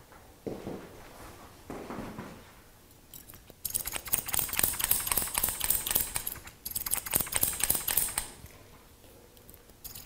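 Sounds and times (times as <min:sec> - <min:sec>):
scissors snipping hair: 0:03.2 - 0:08.3.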